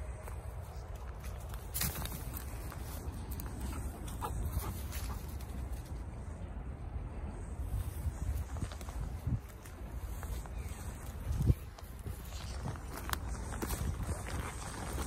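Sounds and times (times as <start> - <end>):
footsteps on leaf litter: 8.4 - 15.0.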